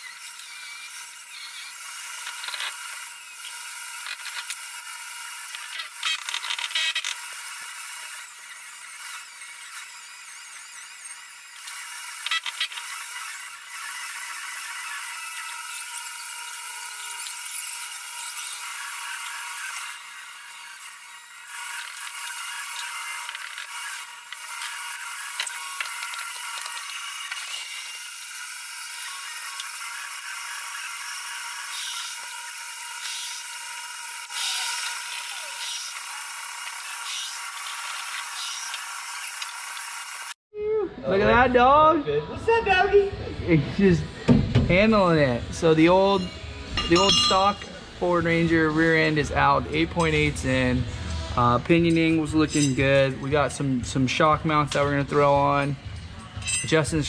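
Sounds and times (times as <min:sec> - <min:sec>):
angle grinder grinding steel: 0:00.0 - 0:40.4, 0:45.6 - 0:57.0.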